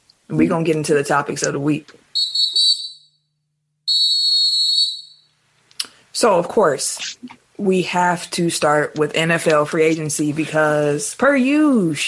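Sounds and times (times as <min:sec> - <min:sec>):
referee's whistle blasts: 0:02.2 - 0:03.2, 0:03.9 - 0:05.3.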